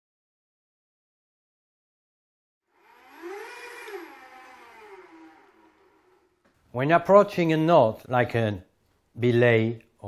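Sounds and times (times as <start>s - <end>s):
electric motor whining: 2.7s - 6.5s.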